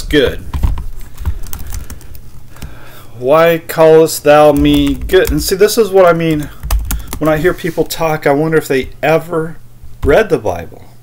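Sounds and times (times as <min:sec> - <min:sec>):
keyboard typing: 0:00.5 - 0:02.7, 0:04.5 - 0:05.6, 0:06.3 - 0:07.5.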